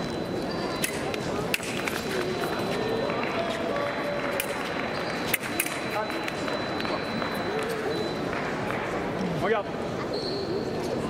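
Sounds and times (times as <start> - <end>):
murmur of voices in a hall: 0.0 - 11.0
fencers' footwork: 0.1 - 9.2.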